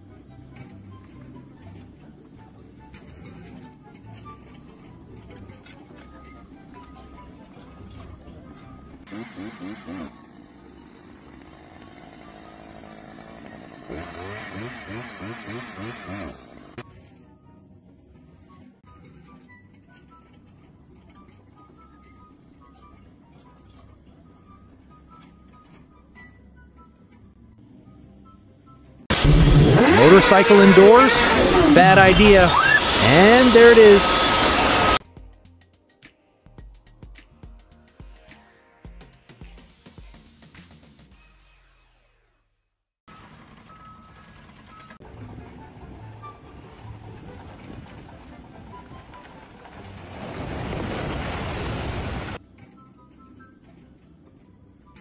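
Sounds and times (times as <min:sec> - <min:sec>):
motorcycle engine: 0:08.5 - 0:16.8, 0:29.1 - 0:35.0
two-stroke engine drilling into wood: 0:09.0 - 0:16.8, 0:29.1 - 0:35.0
background music: 0:29.1 - 0:41.0.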